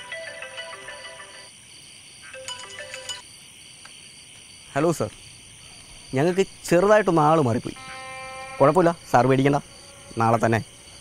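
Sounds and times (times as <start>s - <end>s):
mobile phone ringtone melody: 0.0s - 1.5s, 2.4s - 3.2s.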